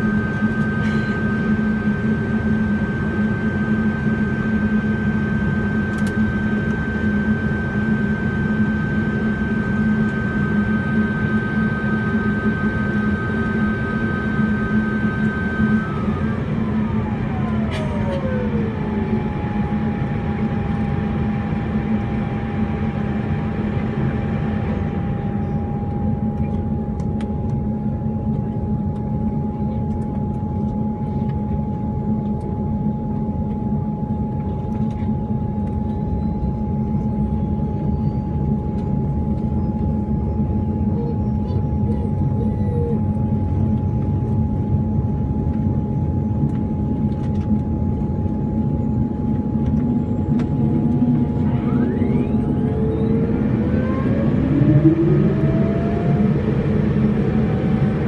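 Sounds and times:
high turbine whine: 0.0 - 58.0
turboprop engine droning: 0.0 - 58.0.

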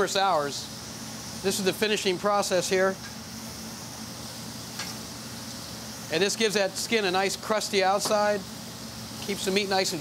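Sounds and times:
sauce sizzling on a grill: 0.0 - 10.0.

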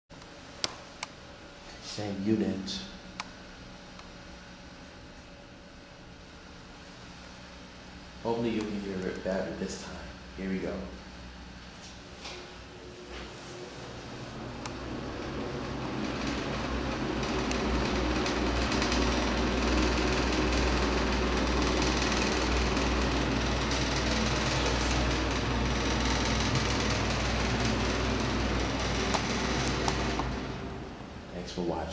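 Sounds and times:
ventilation fan humming: 0.1 - 31.9.

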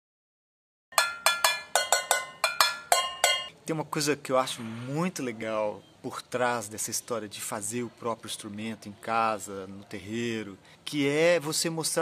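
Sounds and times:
stick striking tin cans: 0.9 - 3.5.

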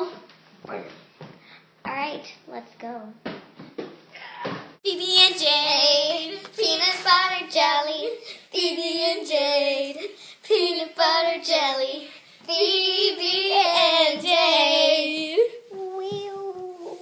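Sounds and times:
young girls singing: 4.8 - 17.0.

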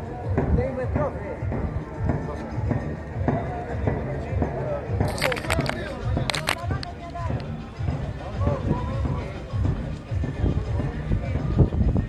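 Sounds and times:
people talking: 2.0 - 9.7.

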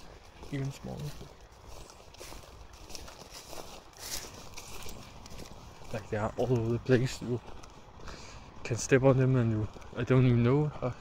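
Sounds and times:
handheld camera rustle: 0.0 - 10.5
footsteps on grass and dirt: 0.0 - 11.0.

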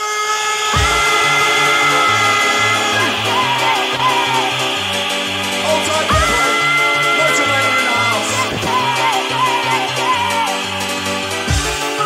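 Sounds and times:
held synth chord: 0.7 - 12.0
stepping bass line: 0.8 - 12.0.

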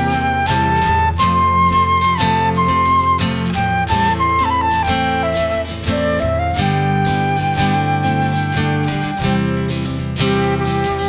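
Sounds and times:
fingerpicked acoustic guitar: 0.0 - 11.0
flute melody: 0.0 - 11.0.

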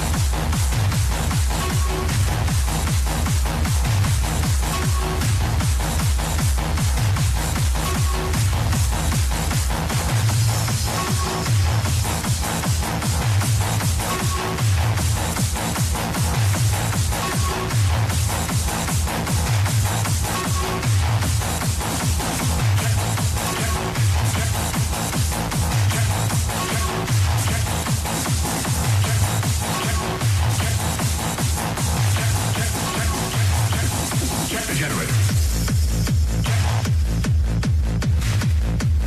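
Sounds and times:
electronic dance track: 0.0 - 39.0
heavy repeating bass line: 0.0 - 39.0.

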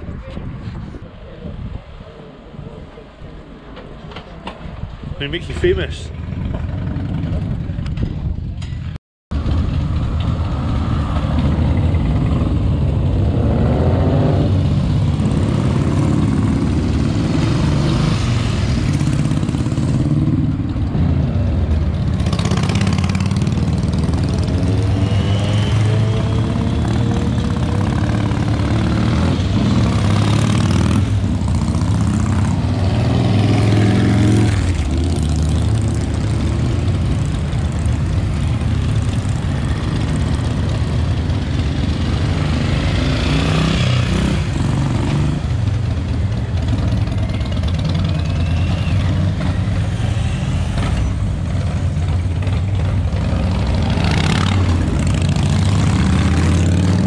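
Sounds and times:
motorcycles riding past: 5.7 - 8.3, 9.4 - 57.0.

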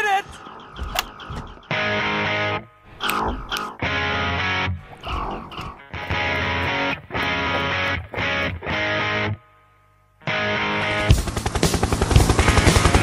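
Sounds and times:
person speaking: 0.0 - 0.4
distorted electric guitar chords: 0.0 - 9.6, 10.2 - 11.2.

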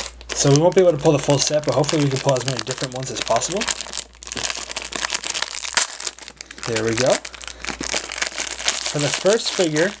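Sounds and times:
foil packet crinkling: 0.0 - 10.0.

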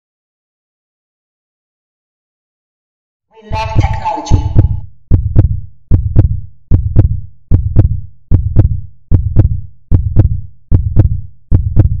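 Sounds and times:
heartbeat thumps: 3.5 - 12.0.

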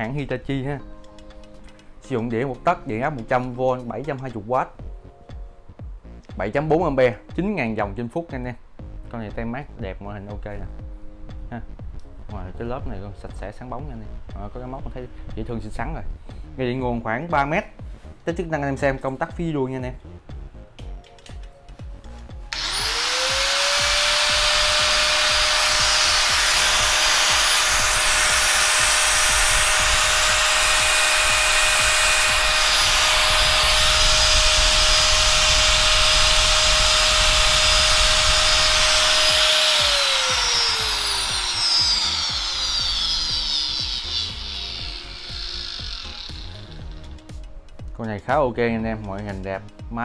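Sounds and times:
angle grinder whining: 22.5 - 47.5.

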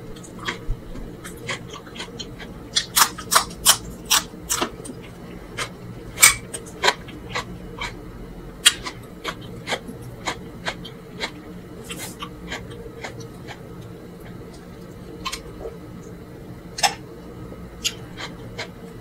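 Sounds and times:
faint steady hum: 0.0 - 19.0
wet chewing: 0.2 - 8.0, 8.6 - 16.2, 17.8 - 18.8.

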